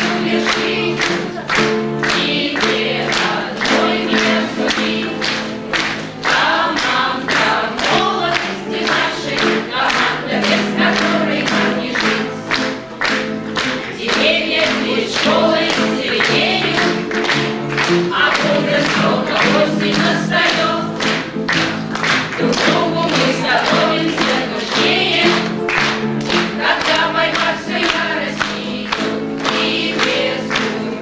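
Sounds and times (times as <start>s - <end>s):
women singing together: 0.0s - 12.8s, 13.6s - 21.4s, 22.0s - 31.0s.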